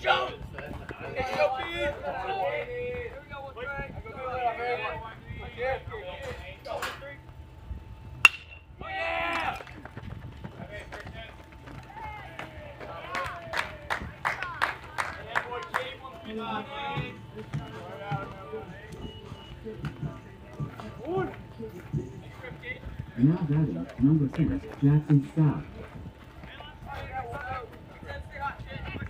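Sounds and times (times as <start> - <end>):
metal bat hitting ball: 8.2 - 8.7
spectators yelling and cheering: 11.7 - 19.0.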